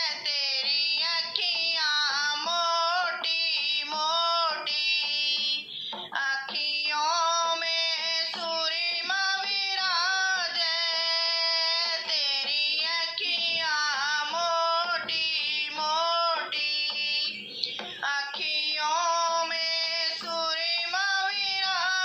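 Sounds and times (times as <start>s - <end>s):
woman singing unaccompanied: 0.0s - 22.0s
woman breathing: 5.7s - 6.1s.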